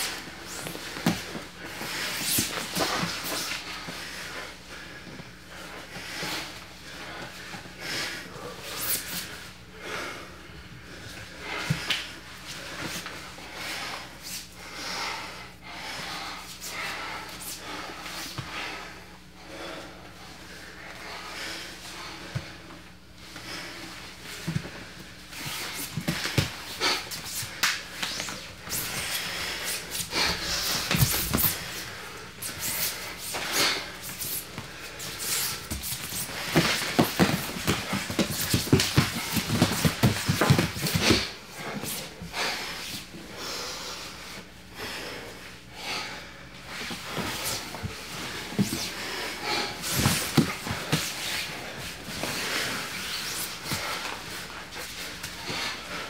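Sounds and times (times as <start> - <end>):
people breathing hard: 0.0 - 56.0
hands slapping: 27.3 - 28.4
feet scuffing on foam mats: 30.0 - 31.8, 34.0 - 42.0.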